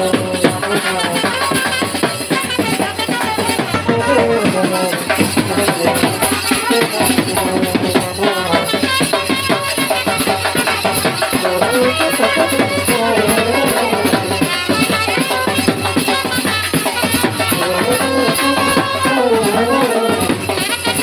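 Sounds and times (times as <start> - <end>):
brass band playing: 0.0 - 21.0
drums: 0.0 - 21.0
shaken metal hand percussion: 0.0 - 21.0.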